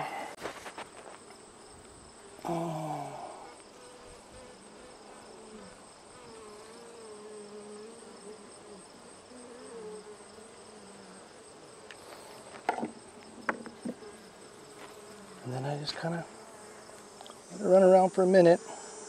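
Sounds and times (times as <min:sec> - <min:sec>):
honeybees buzzing: 0:00.0 - 0:19.0.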